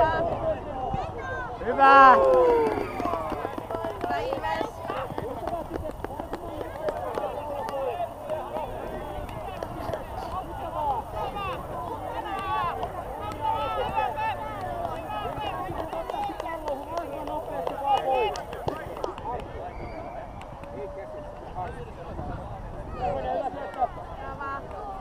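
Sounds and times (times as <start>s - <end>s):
young players shouting: 1.0s - 19.0s.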